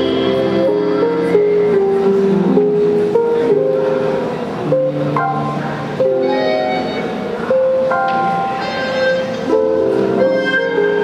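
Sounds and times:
piano: 0.0s - 11.0s
melodica chords: 4.6s - 11.0s.

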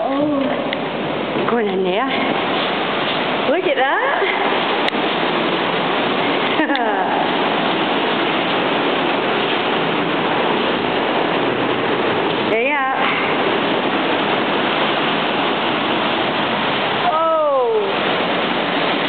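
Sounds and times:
waterfall roaring: 0.0s - 19.0s.

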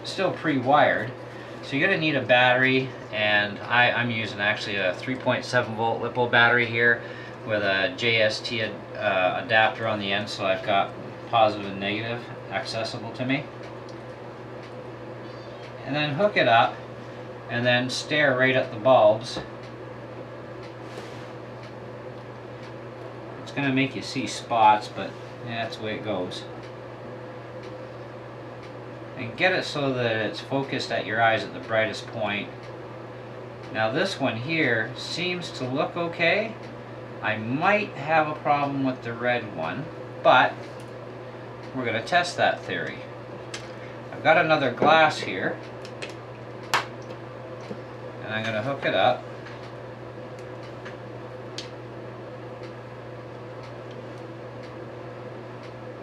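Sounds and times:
room hum and hiss: 0.0s - 56.0s.

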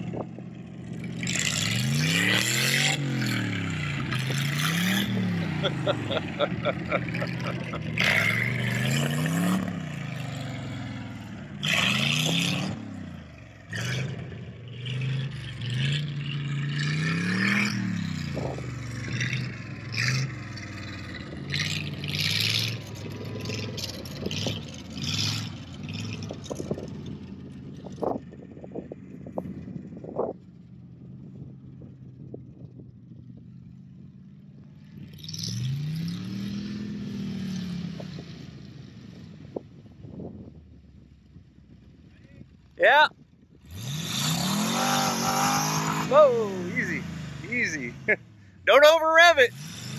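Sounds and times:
truck engine revving: 0.0s - 30.0s, 34.8s - 38.6s, 43.6s - 49.9s.

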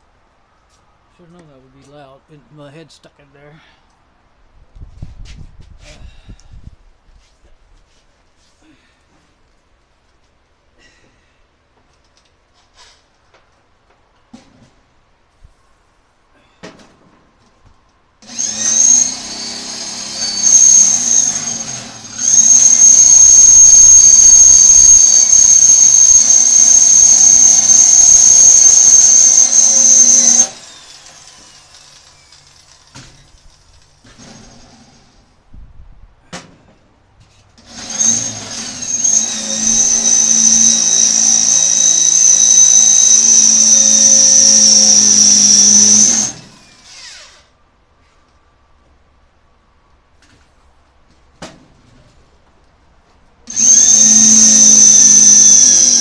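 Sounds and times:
cordless drill drilling into steel: 18.2s - 33.5s, 37.6s - 47.5s, 53.5s - 56.0s.

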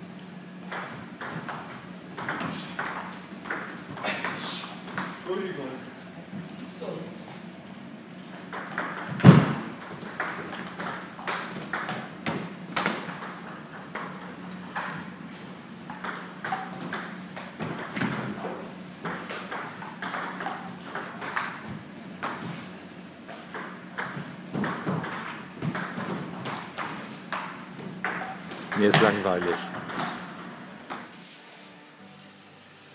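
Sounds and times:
table tennis ball clicking: 19.0s - 21.6s, 23.5s - 31.0s.

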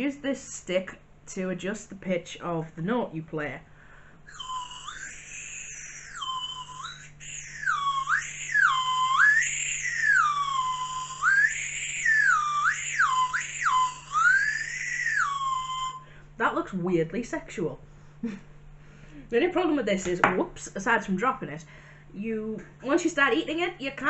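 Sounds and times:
slide whistle sliding notes: 4.3s - 16.1s.

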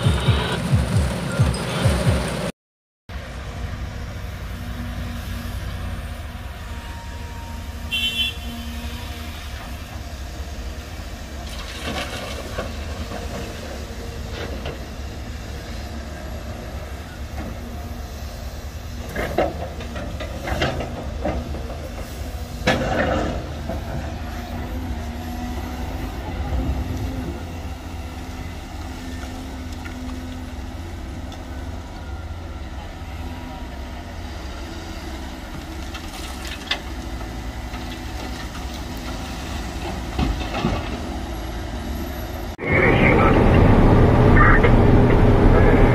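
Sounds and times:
excavator diesel engine running: 0.0s - 2.5s, 3.1s - 45.9s.

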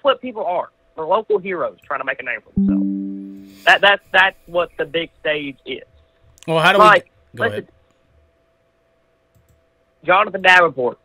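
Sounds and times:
low steady hum: 2.6s - 5.5s, 6.4s - 7.6s.

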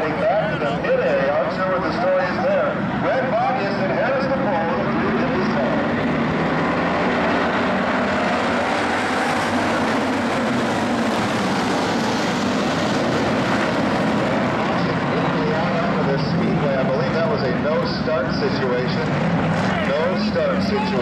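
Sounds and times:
race car engines running: 0.0s - 21.0s.

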